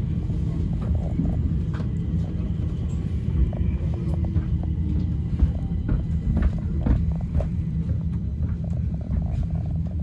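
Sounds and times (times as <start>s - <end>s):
train wheels rumbling on track: 0.0s - 10.0s.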